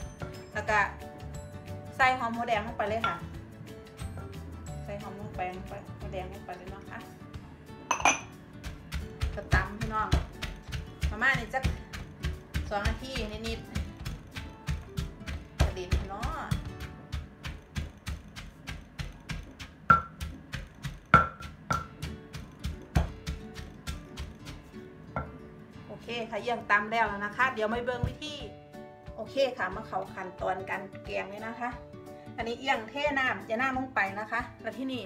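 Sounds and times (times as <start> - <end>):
soft background music: 0.0 - 35.0
ceramic bowl clinking on mortar: 7.9 - 8.4, 21.1 - 22.0
wooden pestle thumping: 7.9 - 25.4.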